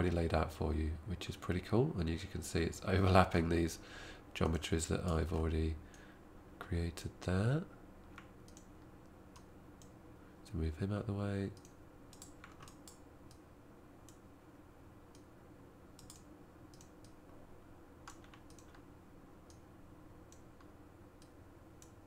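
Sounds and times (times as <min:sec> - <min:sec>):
steady room hum: 0:00.0 - 0:22.0
computer mouse and keyboard clicking: 0:08.0 - 0:08.7, 0:11.6 - 0:13.4, 0:16.0 - 0:17.2, 0:18.0 - 0:18.8.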